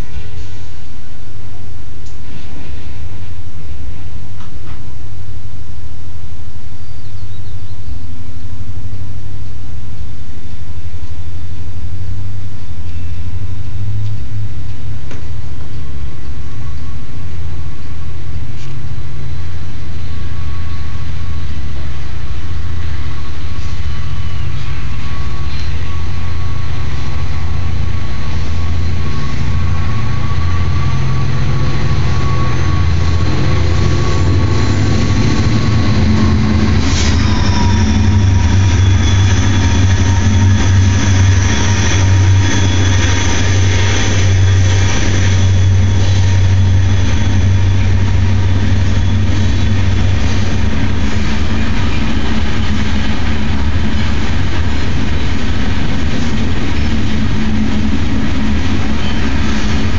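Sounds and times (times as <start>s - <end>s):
freight train rumbling past: 0.0s - 59.9s
wheels squealing on rails: 15.6s - 59.9s.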